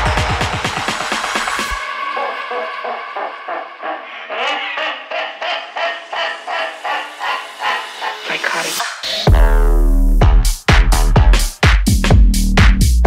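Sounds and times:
chopped synth stabs: 7.0 - 12.8.

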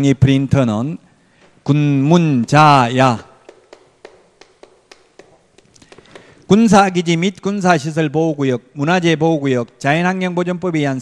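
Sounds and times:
chalk tapping on chalkboard: 3.3 - 6.4.

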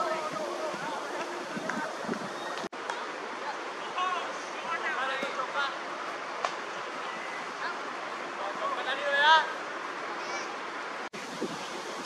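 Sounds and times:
outdoor hiss: 0.0 - 12.0.

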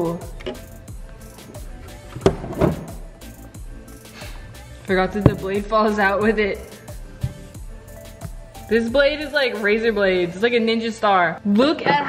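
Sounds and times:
background music: 0.0 - 12.0
plastic blender jar knocking: 5.2 - 5.6.

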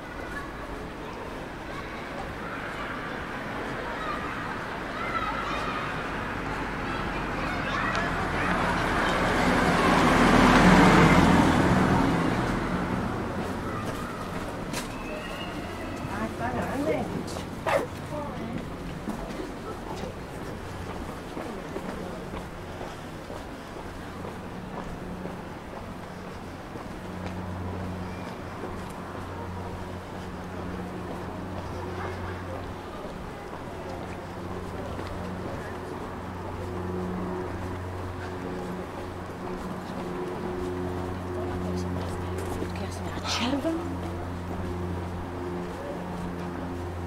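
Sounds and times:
low traffic hum: 0.0 - 47.0
passers-by talking: 0.0 - 47.0
vehicle passing: 3.4 - 47.0.

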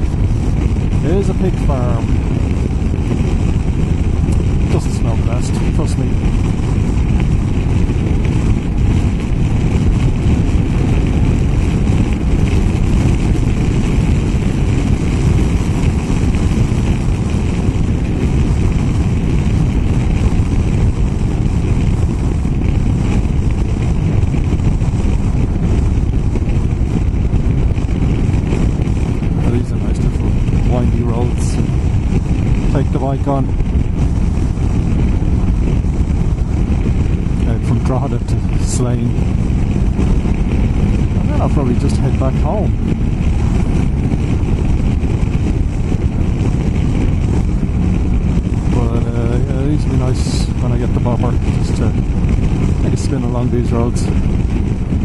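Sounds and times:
motorcycle engine: 0.0 - 55.0
wind rushing on microphone: 0.0 - 55.0.

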